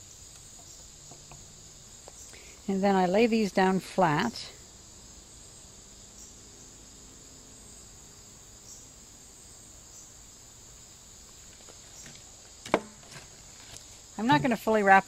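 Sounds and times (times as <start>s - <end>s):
insects chirring: 0.0s - 15.0s.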